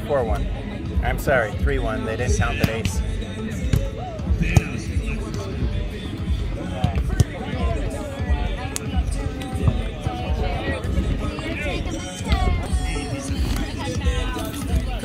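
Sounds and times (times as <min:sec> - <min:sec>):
background music: 0:00.0 - 0:15.0
voices: 0:00.0 - 0:15.0.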